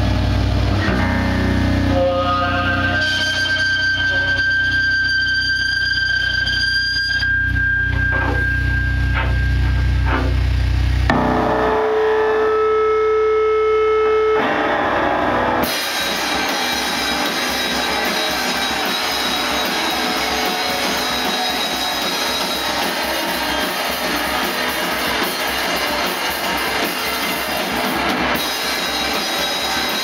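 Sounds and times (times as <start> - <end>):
drum kit: 0.0 - 4.0, 7.9 - 30.0
distorted electric guitar: 0.0 - 30.0.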